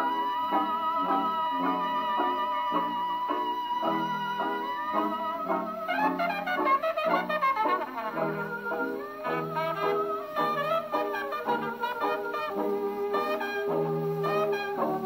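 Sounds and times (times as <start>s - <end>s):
jazz band record on phonograph: 0.0s - 15.0s
trumpet: 0.0s - 15.0s.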